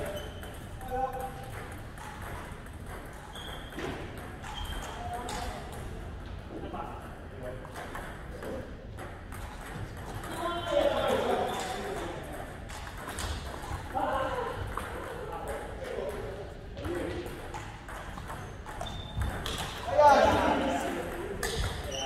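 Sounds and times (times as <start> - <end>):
people talking: 19.8 - 22.0.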